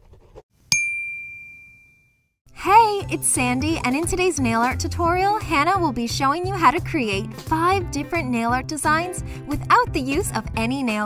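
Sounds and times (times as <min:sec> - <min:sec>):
pen scribbling: 0:00.0 - 0:00.4
bright ding: 0:00.7 - 0:02.3.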